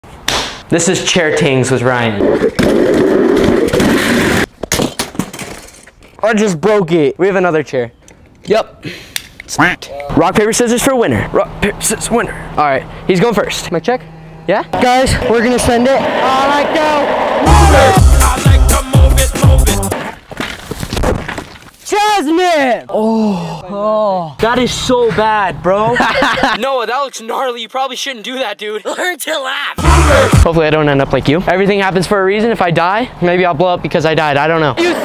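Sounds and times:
chair crashing and breaking: 2.4s - 6.0s
chair crashing onto rocks: 20.2s - 21.7s.

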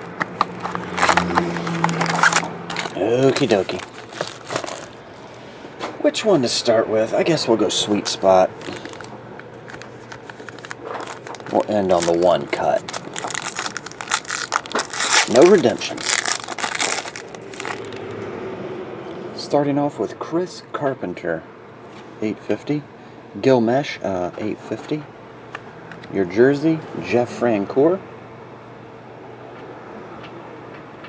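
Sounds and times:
foil card packs crinkling: 0.0s - 5.0s, 8.0s - 18.1s.

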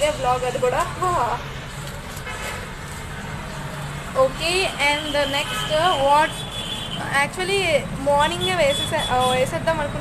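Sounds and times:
road traffic with engine hum: 0.0s - 10.0s.

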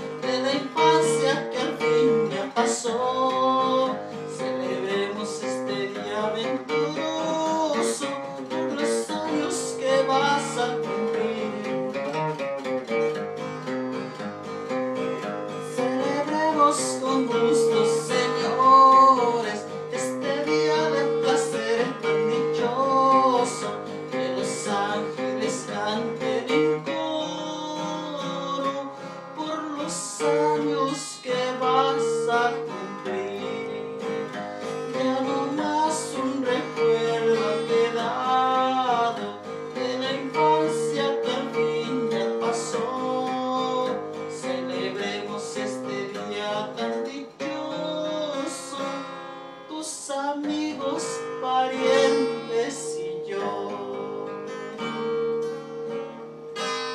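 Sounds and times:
acoustic guitar strummed: 0.0s - 56.9s.

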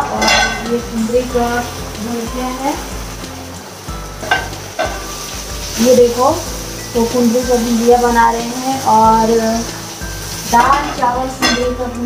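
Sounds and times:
vegetables sizzling in a pan: 0.0s - 12.0s.

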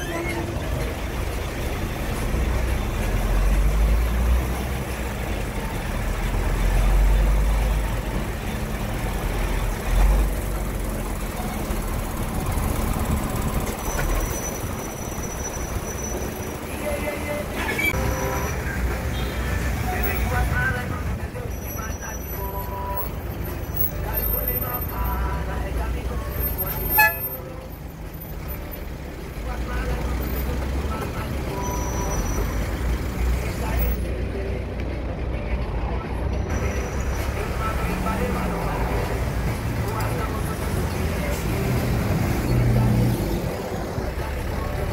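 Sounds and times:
low vehicle rumble: 0.0s - 44.9s
vehicle engines in traffic: 0.0s - 44.9s.

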